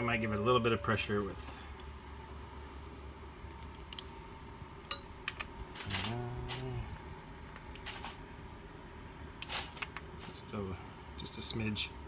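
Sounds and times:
man humming or grunting: 5.9s - 7.0s.

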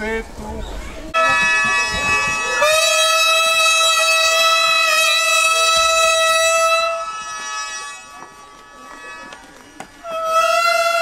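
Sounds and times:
buzzy double-reed pipe note: 1.2s - 11.0s.

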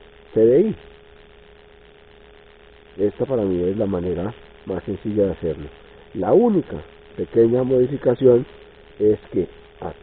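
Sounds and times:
constant mid-pitched tone: 0.0s - 10.0s
faint steady hum: 0.0s - 10.0s.

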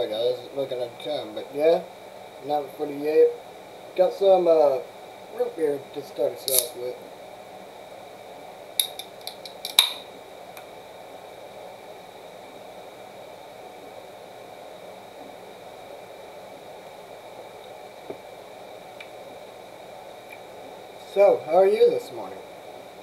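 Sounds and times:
room noise: 0.0s - 23.0s
can opening pop: 6.5s - 6.7s.

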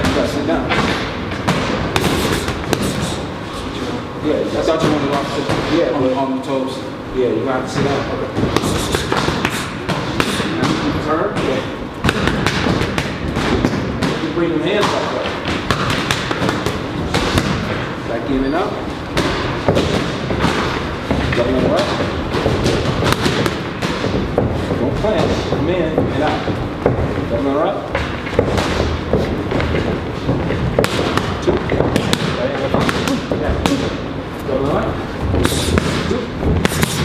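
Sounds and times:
boxing gloves smacking mitts: 0.0s - 3.3s, 7.8s - 17.9s, 19.1s - 34.7s, 35.3s - 37.0s
boxing glove punches: 0.8s - 3.2s.

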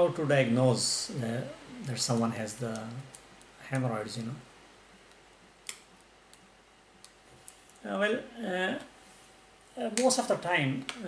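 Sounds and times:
man talking: 0.0s - 4.5s, 7.8s - 9.0s, 9.8s - 11.0s.

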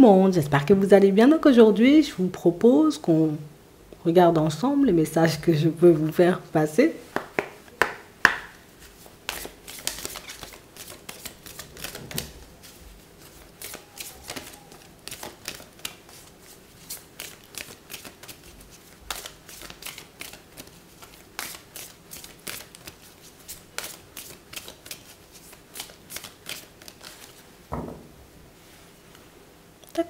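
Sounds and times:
cards being shuffled: 7.2s - 27.4s.

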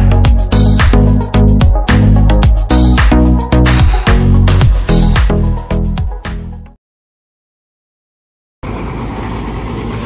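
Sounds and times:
bus diesel engine idling: 8.6s - 10.0s.

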